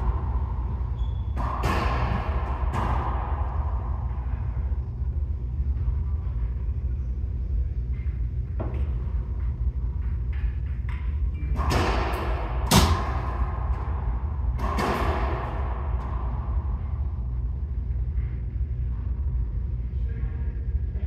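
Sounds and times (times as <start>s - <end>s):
racquetball hitting court walls: 0.0s - 4.8s, 10.0s - 17.0s.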